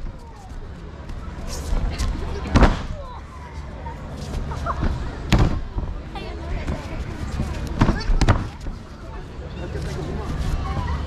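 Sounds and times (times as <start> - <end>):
bodies slapping onto mats: 4.8 - 5.9.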